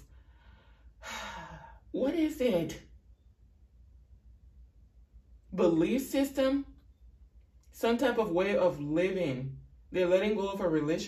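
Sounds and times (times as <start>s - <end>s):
woman breathing and sighing: 0.0s - 1.9s.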